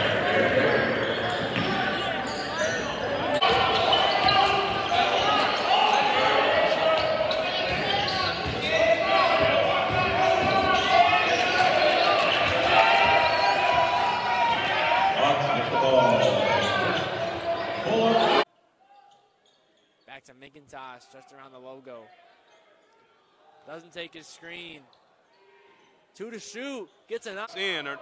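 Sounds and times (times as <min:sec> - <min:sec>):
spectators talking and shouting: 0:00.0 - 0:18.5.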